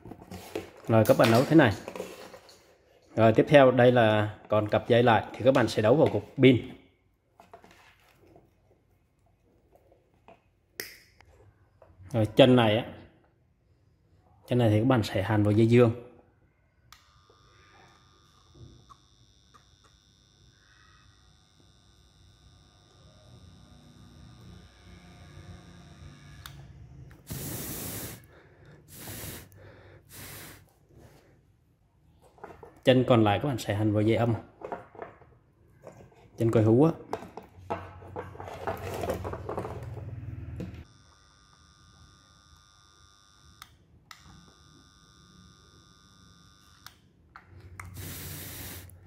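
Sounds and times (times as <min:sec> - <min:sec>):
puffs of breath: 0:27.3 - 0:31.4.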